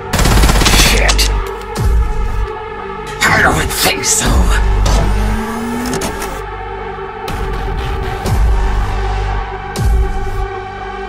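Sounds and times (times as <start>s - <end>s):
vehicle engine revving: 4.6s - 6.4s.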